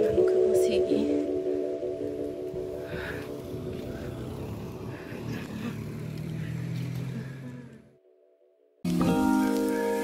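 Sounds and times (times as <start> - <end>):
motorcycle engine running: 2.6 - 7.9.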